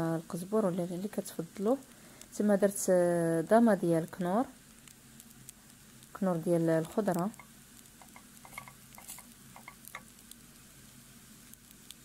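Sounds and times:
food sizzling in oil: 0.0s - 12.0s
small crackles: 0.9s - 12.0s
wooden spoon stirring: 6.6s - 10.1s.

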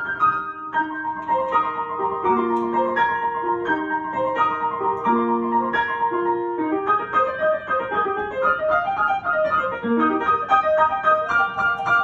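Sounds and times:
upright piano playing: 0.0s - 12.0s.

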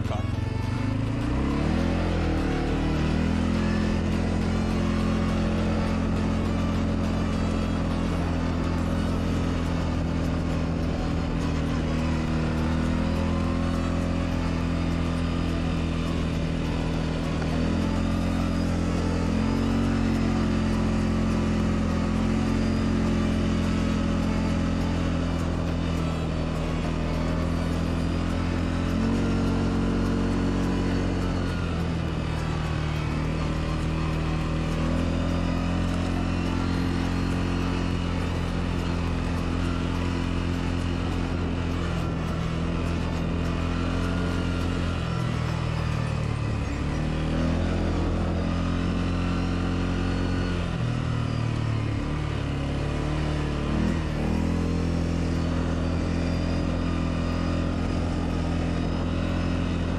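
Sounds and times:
atv engine running: 0.0s - 59.9s.

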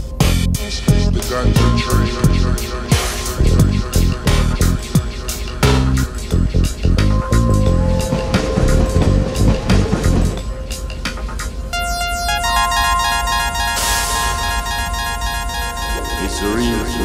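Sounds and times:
heavy bass beat: 0.2s - 8.0s
deep sustained bass: 0.3s - 2.8s, 3.4s - 5.0s, 5.6s - 10.4s
synth tones: 11.7s - 17.0s.

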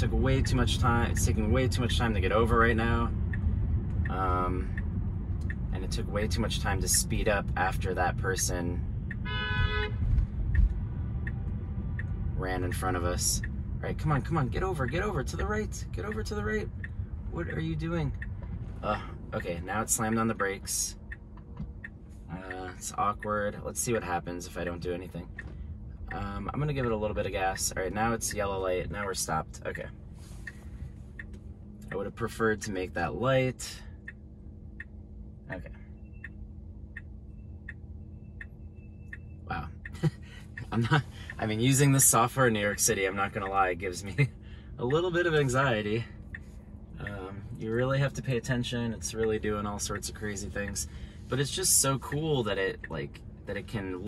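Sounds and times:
car turn signal ticking: 0.0s - 54.0s
low road rumble: 0.0s - 54.0s
low steady hum: 0.0s - 54.0s
short car horn honk: 9.2s - 10.0s.

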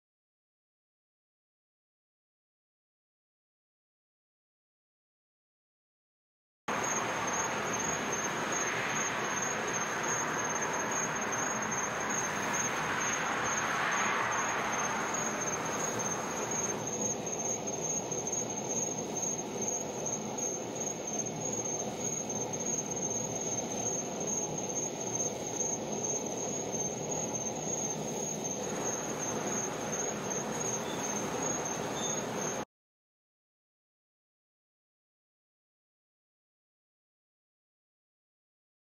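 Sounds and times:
high-pitched whine: 6.7s - 32.6s
outdoor background hiss: 6.7s - 32.6s.

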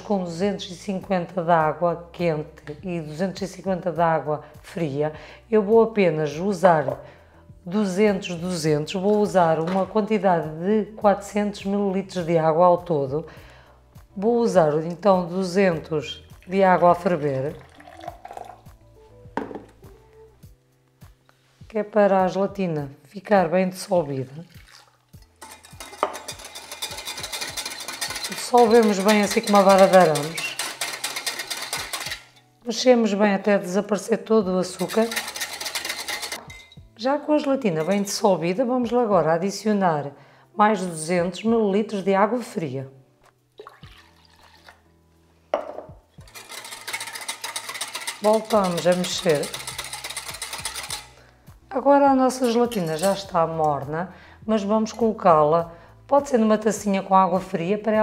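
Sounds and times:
soft background music: 0.0s - 58.0s
water poured into a glass jug: 16.3s - 18.8s, 24.3s - 25.3s, 43.6s - 44.9s
glass jug clinks: 17.6s - 18.6s, 24.6s - 30.9s, 34.8s - 36.8s
kettle knocking on wooden board: 19.4s - 19.7s
whisk clicking against glass: 25.2s - 32.4s, 34.7s - 36.7s, 46.2s - 51.2s.

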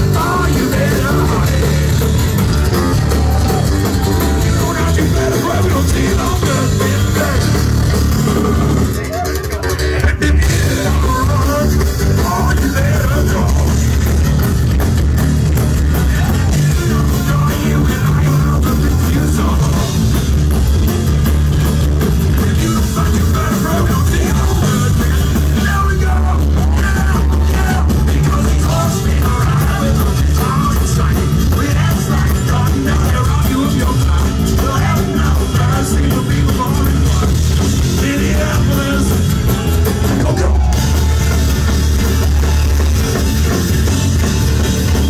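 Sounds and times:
person singing: 0.0s - 14.0s, 15.9s - 20.0s, 22.2s - 41.2s
drum kit beat: 0.0s - 45.0s
guitar: 0.0s - 45.0s
heavy bass: 0.0s - 45.0s
rock band playing loudly: 0.0s - 45.0s.

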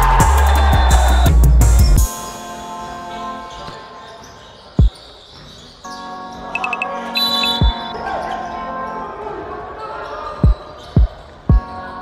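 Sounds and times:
faint background music: 2.0s - 12.0s.

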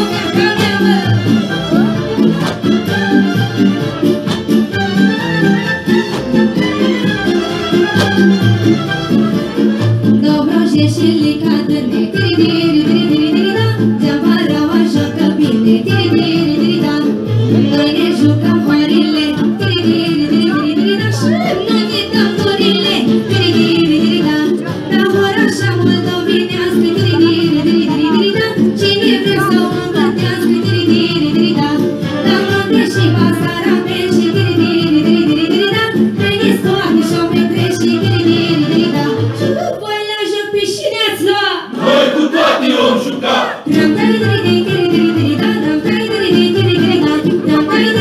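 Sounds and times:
instrumental accompaniment: 0.0s - 39.7s, 41.7s - 48.0s
folk music over loudspeaker: 0.0s - 48.0s
girl singing into microphone: 10.2s - 41.6s, 43.7s - 48.0s.

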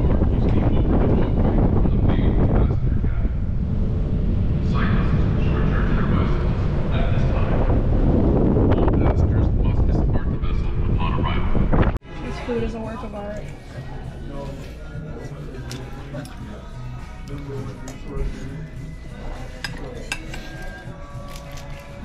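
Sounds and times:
wind buffeting microphone: 0.0s - 12.0s
indistinct voices: 0.0s - 22.0s.

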